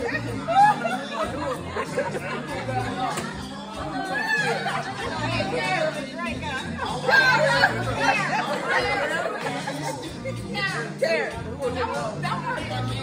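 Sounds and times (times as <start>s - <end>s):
background music with bass line: 0.0s - 13.0s
voices chatting: 0.0s - 13.0s.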